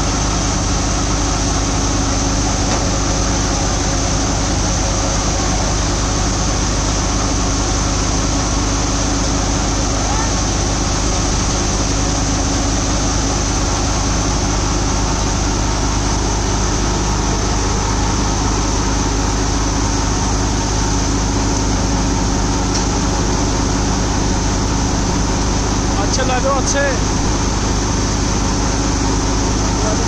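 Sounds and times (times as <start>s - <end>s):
thresher running under load: 0.0s - 30.0s
tractor engine: 0.0s - 30.0s.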